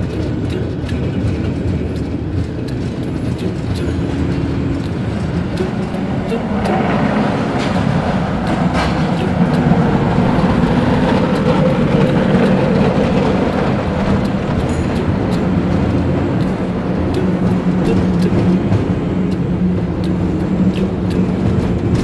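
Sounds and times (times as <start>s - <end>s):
gondola cabin rumbling: 0.0s - 22.0s.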